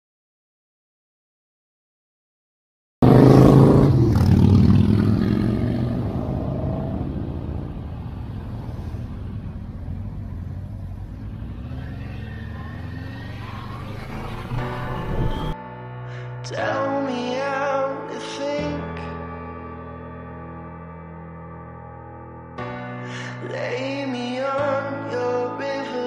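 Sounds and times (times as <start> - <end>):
motorcycle engine: 3.0 - 15.6
wind noise: 14.2 - 15.6
music: 14.4 - 26.0.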